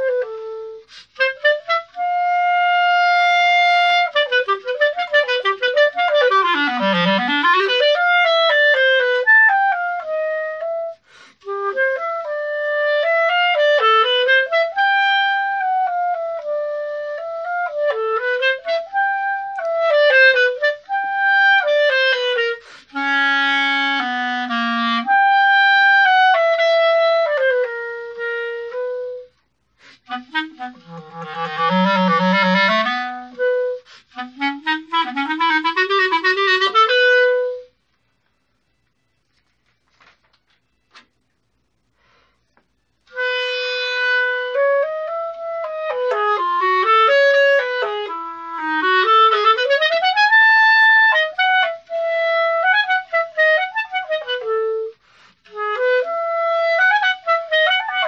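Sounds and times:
solo clarinet melody: 0.0 - 58.0.

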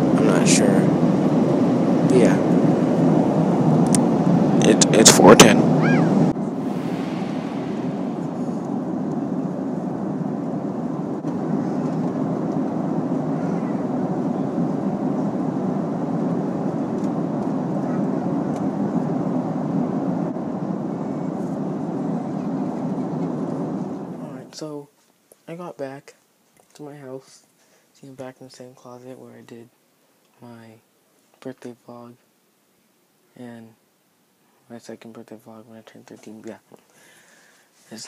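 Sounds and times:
airliner cabin noise: 0.0 - 24.5.

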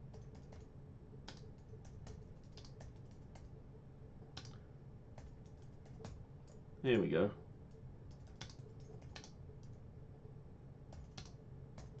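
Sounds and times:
computer keyboard typing: 0.1 - 0.7, 1.3 - 3.5, 5.2 - 6.6, 8.0 - 9.8, 10.9 - 12.0.

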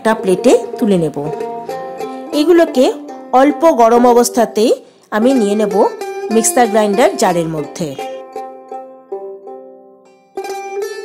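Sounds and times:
woman narrating: 0.0 - 1.4, 2.3 - 8.2
plucked string background music: 0.0 - 11.0.

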